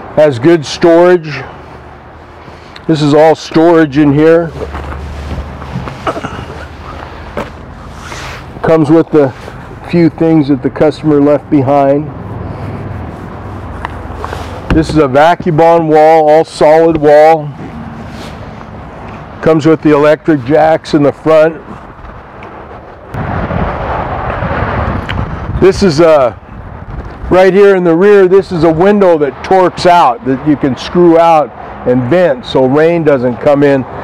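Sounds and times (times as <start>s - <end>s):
wind buffeting microphone: 21.7s - 27.4s.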